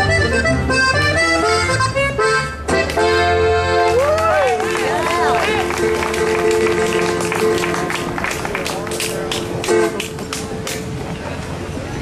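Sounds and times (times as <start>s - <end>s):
button accordion holding chord: 0.0s - 3.9s
band playing: 0.0s - 11.1s.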